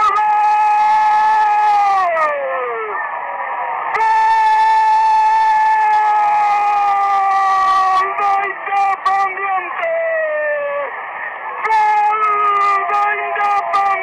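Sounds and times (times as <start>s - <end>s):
commentator shouting goal: 4.0s - 10.9s, 11.6s - 14.0s.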